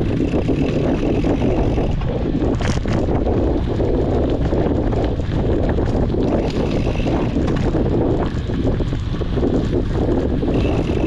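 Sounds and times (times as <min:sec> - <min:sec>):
bike clicks and rattles: 0:00.0 - 0:11.0
tyres rumbling over dirt: 0:00.0 - 0:11.0
wind rushing over microphone: 0:00.0 - 0:11.0.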